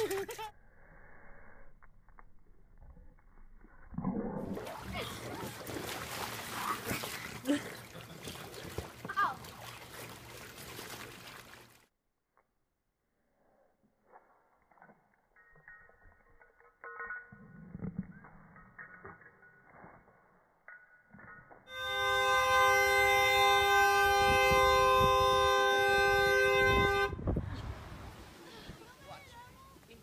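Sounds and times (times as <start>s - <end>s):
horn-like held chord: 21.7s - 27.2s.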